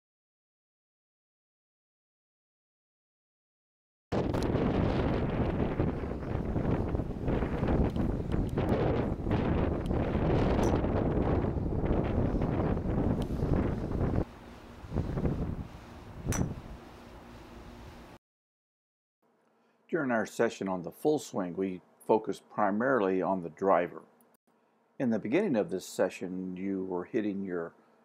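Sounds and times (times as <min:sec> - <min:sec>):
wind buffeting microphone: 0:04.2 - 0:16.7
sharp click: 0:16.3 - 0:16.6.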